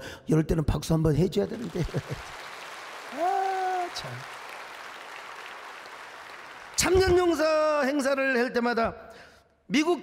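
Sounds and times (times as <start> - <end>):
congregation applauding: 1.4 - 7.9.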